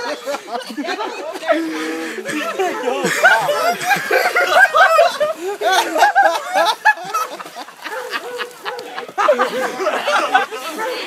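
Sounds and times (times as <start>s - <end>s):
people laughing in honk-like cries: 0.0s - 11.0s.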